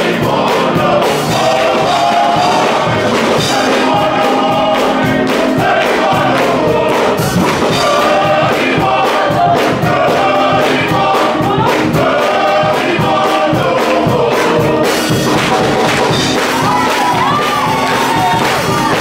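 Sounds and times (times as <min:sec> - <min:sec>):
men's gospel choir singing: 0:00.0 - 0:19.0
steady beat: 0:00.0 - 0:19.0.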